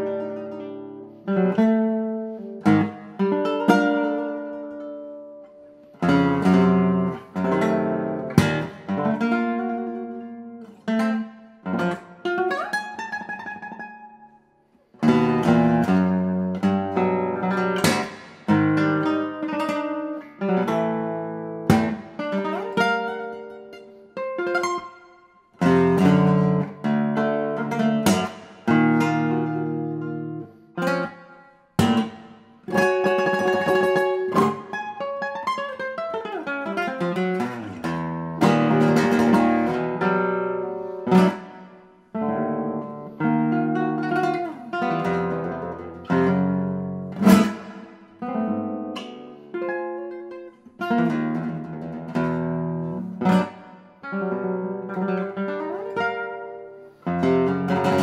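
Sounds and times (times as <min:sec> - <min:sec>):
classical guitar playing: 0:00.0 - 0:58.0.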